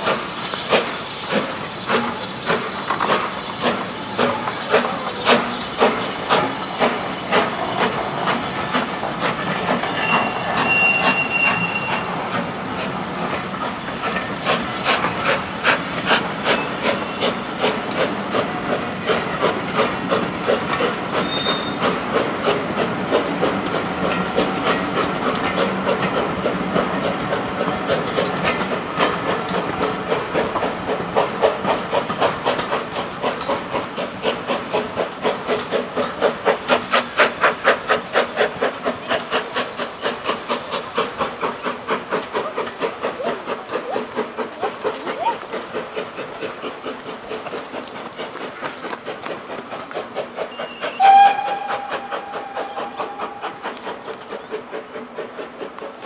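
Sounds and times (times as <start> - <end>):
carriages clattering on rails: 0.0 - 56.0
steam hissing: 0.0 - 56.0
steam locomotive exhaust beats: 0.0 - 56.0.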